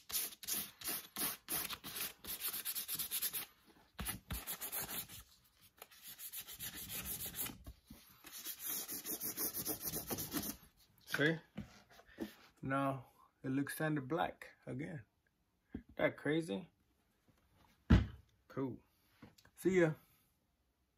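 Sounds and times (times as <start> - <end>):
sandpaper rubbing on leather: 0.0 - 3.5, 4.1 - 5.3, 5.9 - 7.6, 8.2 - 10.6.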